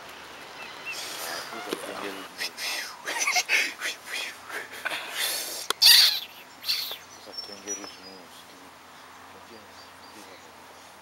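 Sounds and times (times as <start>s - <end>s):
sharp click with hiss: 5.6s - 5.8s.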